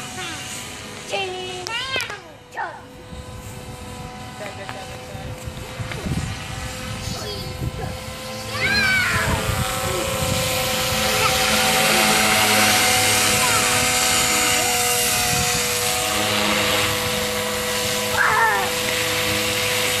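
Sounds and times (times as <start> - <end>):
toy helicopter rotor whine: 0.0 - 20.0.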